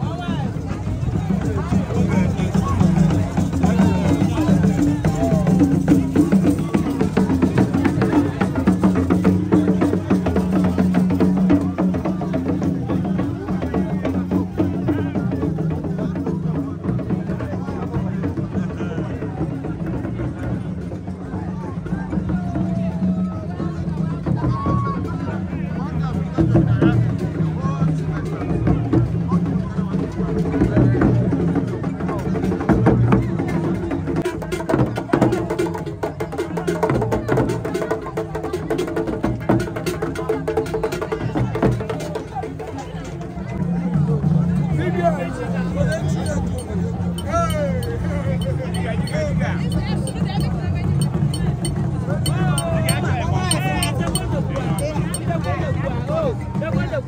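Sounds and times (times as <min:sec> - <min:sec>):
crowd voices: 0:00.0 - 0:57.0
drum-led music: 0:46.2 - 0:55.3.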